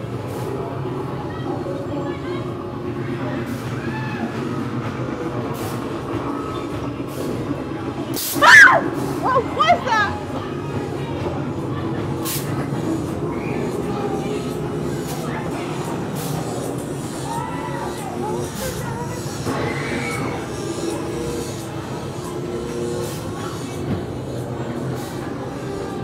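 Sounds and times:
shrill scream: 8.4s - 8.9s.

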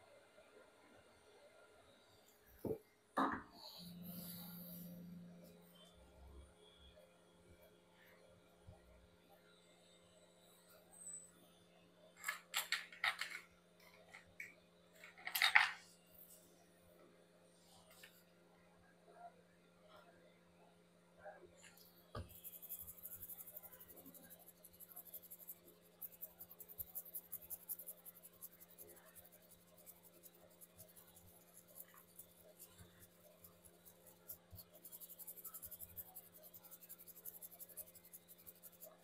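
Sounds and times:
bristle brush scrubbing metal stencil: 22.2s - 39.0s.

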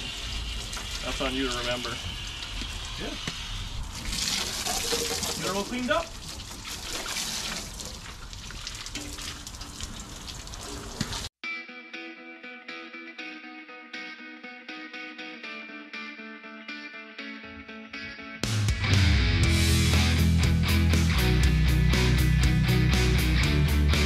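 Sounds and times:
garden hose spraying water: 0.0s - 11.3s
background music: 11.5s - 24.0s.

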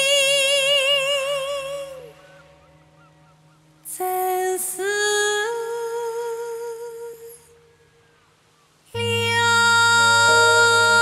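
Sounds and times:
high wordless singing voice: 0.0s - 2.6s, 3.8s - 8.0s, 8.9s - 11.0s.

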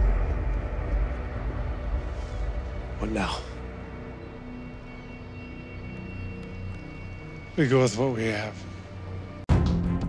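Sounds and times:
low rumble: 0.0s - 4.6s.

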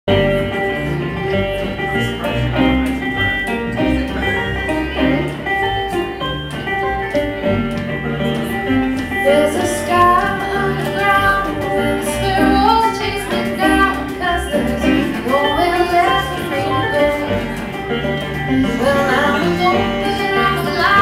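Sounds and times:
folk band playing: 0.1s - 21.0s
women singing in harmony: 18.6s - 21.0s.

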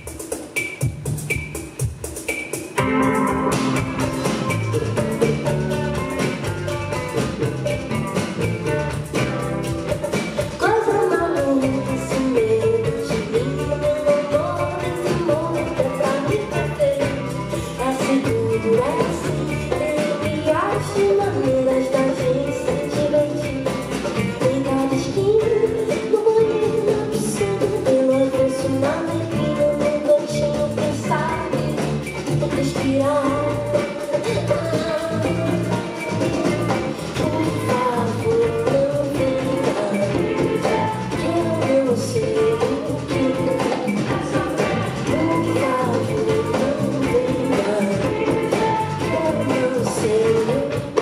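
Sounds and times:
drum kit beat: 0.0s - 51.0s
keyboard: 0.0s - 51.0s
live pop rock band: 0.0s - 51.0s
electric guitar: 2.6s - 51.0s
bass guitar: 2.8s - 51.0s
woman singing: 10.0s - 51.0s.

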